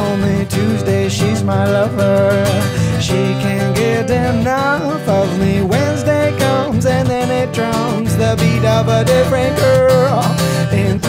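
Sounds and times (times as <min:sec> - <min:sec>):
man singing: 0:00.0 - 0:11.0
strummed acoustic guitar: 0:00.0 - 0:11.0.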